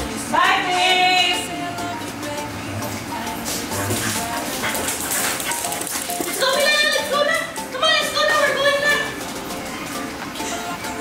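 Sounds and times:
dog claws clicking on hard floor: 4.0 - 7.2.

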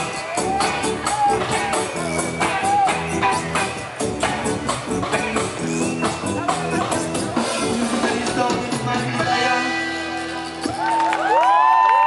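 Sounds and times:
crowd cheering and whooping: 0.0 - 3.2, 10.5 - 12.0.

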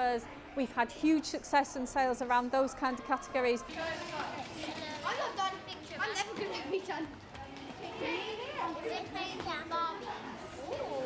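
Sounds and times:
children talking and playing: 0.0 - 11.0.

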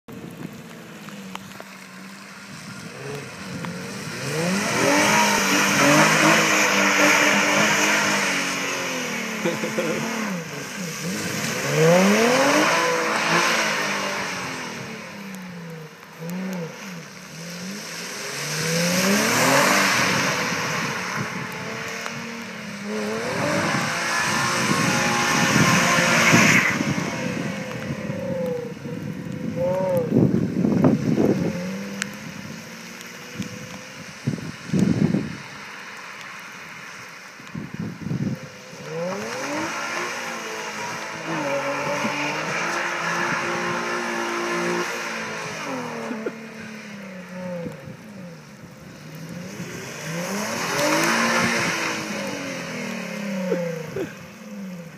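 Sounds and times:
car engine revving: 0.6 - 36.8, 38.2 - 54.9.

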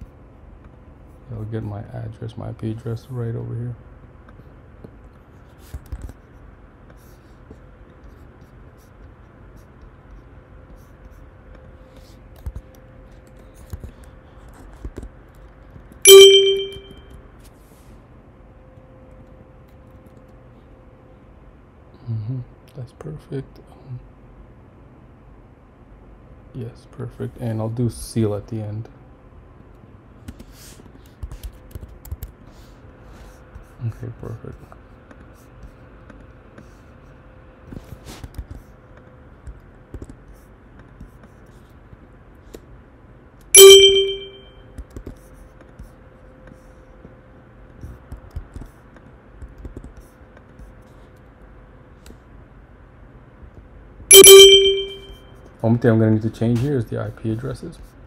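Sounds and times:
computer alert chime: 16.1 - 17.0, 43.6 - 44.4, 54.1 - 55.2
loud bell-like ding: 16.1 - 17.0, 43.6 - 44.4, 54.1 - 55.2.

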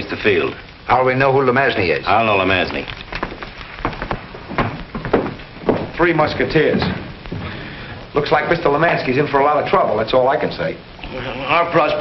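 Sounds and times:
old film soundtrack hiss: 0.0 - 12.0.

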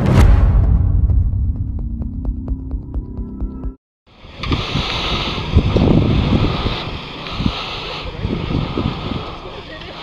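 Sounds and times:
wind buffeting microphone: 4.2 - 10.0.

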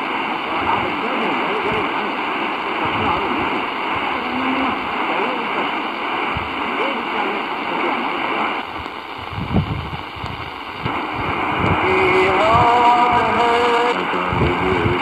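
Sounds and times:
radio hiss and static: 0.0 - 15.0
faint radio speech: 0.4 - 8.5.

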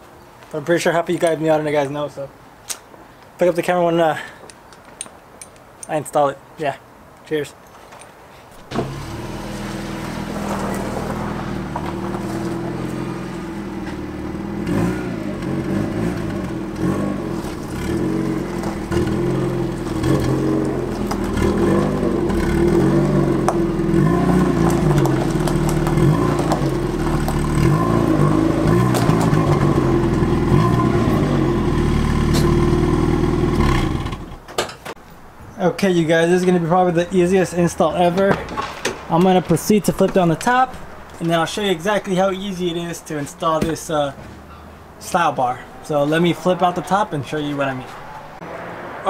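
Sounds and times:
car engine running at low speed: 8.6 - 34.4.

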